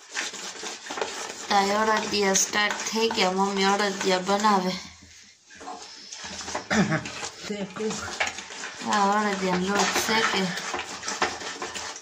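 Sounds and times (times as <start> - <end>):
hands mixing in a steel bowl: 0.0 - 12.0
woman speaking: 1.5 - 4.9, 7.4 - 8.2, 8.8 - 10.7
scraping and knocks on steel: 5.6 - 12.0.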